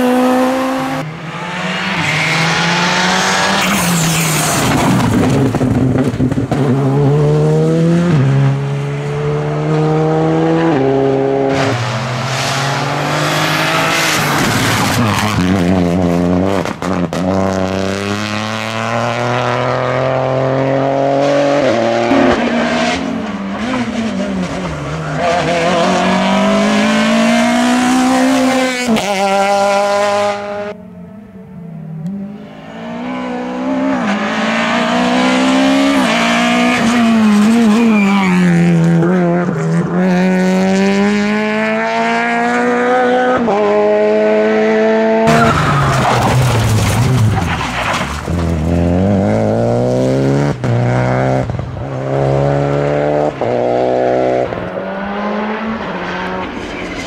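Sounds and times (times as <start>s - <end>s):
rally car engines revving: 0.0s - 57.0s.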